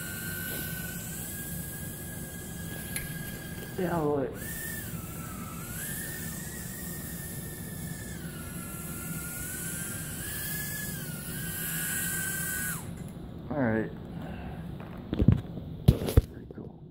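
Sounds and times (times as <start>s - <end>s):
drone propellers whining: 0.0s - 13.2s.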